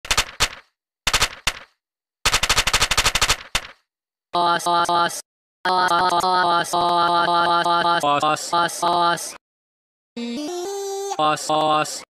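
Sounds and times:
machine-gun fire: 0.1s - 1.6s, 2.3s - 3.7s.

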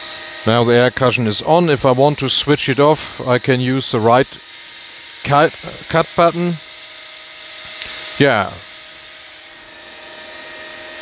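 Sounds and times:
paper cutter machine hum: 0.0s - 11.0s.

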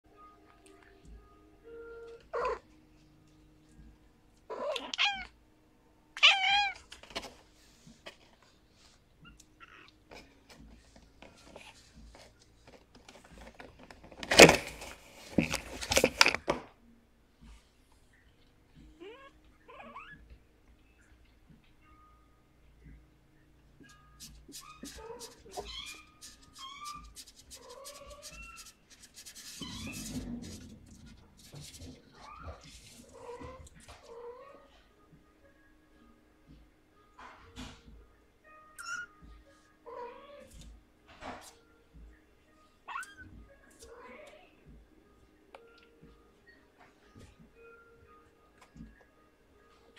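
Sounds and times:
cat meowing: 2.3s - 2.6s, 4.5s - 5.4s, 6.2s - 6.8s, 19.0s - 20.2s, 38.6s - 39.2s, 42.9s - 44.5s
kittens mewing: 2.3s - 2.7s, 4.5s - 5.4s.

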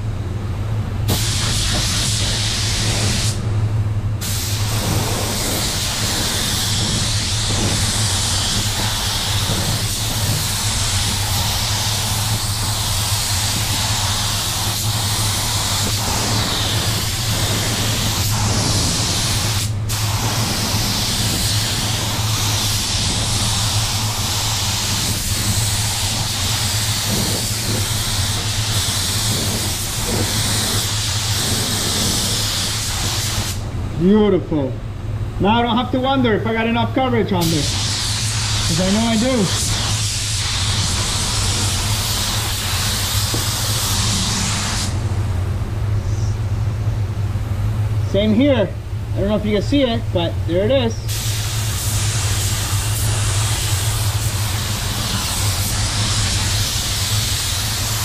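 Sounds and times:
low hum of air system: 0.0s - 58.0s
paint spray gun hissing: 1.1s - 3.4s, 4.2s - 33.6s, 37.4s - 45.0s, 51.0s - 58.0s.

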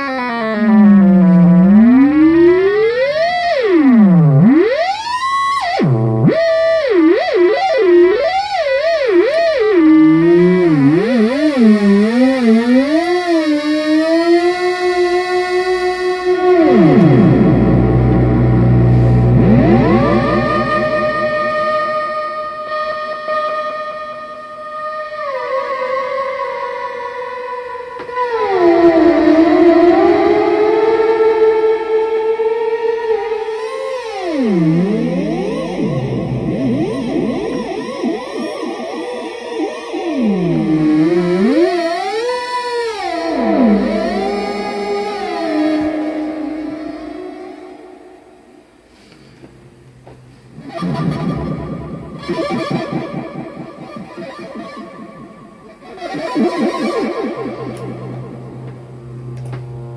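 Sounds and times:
buzzy synthesizer tone swooping: 0.0s - 59.9s.

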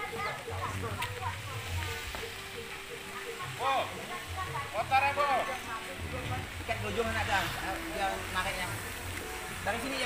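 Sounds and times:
people talking: 0.0s - 8.8s.

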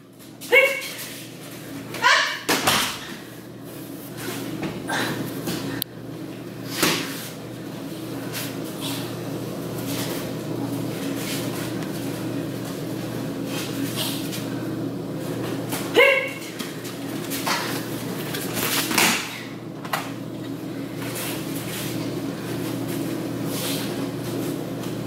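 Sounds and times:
steady background hum: 0.0s - 25.0s
person shouting: 2.0s - 2.5s, 16.0s - 16.4s.

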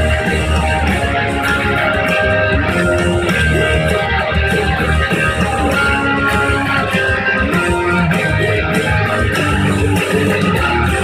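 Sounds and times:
rock band with electric guitar: 0.0s - 11.0s.

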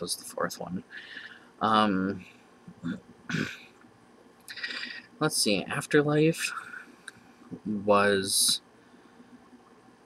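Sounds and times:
man speaking: 0.0s - 2.2s, 2.8s - 3.6s, 4.5s - 6.9s, 7.5s - 8.6s
man breathing in: 0.9s - 1.5s, 4.5s - 5.0s
man's throaty sound: 2.8s - 3.6s, 4.5s - 5.4s.

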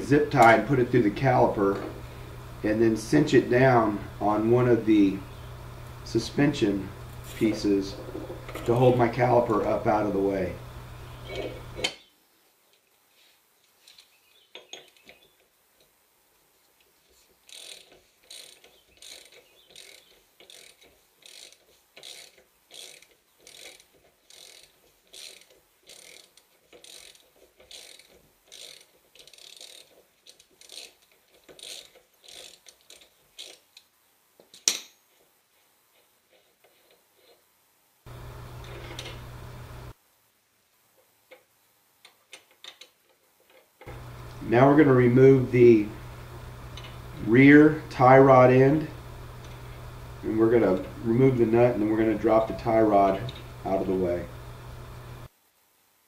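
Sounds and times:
hand ratchet clicking: 17.5s - 33.8s, 46.7s - 47.0s.

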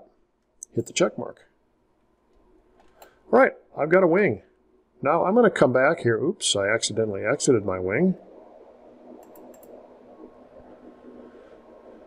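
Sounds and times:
low background noise: 0.0s - 12.0s
computer mouse clicks: 2.3s - 3.2s, 9.2s - 9.8s.

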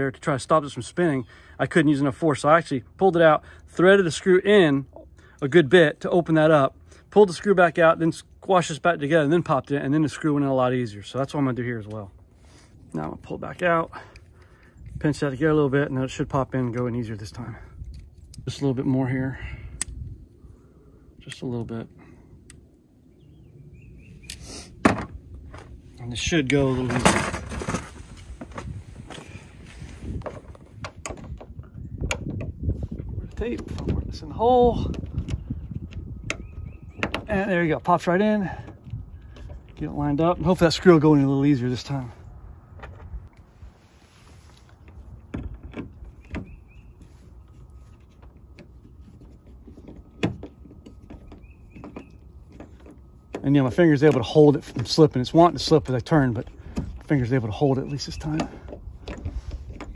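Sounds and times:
plastic clicks and creaks: 58.0s - 59.9s.

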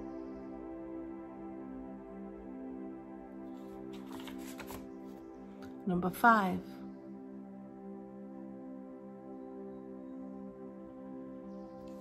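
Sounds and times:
soft ambient music: 0.0s - 12.0s
paper cards rustling: 3.6s - 5.8s.

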